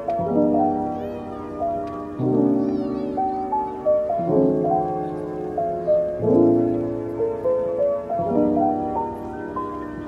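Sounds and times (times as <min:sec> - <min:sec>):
soft instrumental keyboard music: 0:00.0 - 0:10.0.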